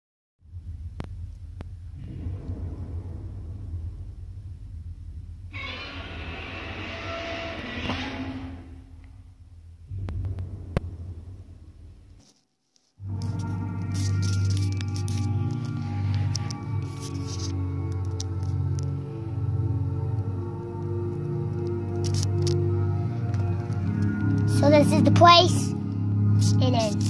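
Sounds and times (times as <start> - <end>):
film soundtrack rumble and hum: 0.4 - 27.0
music: 13.0 - 27.0.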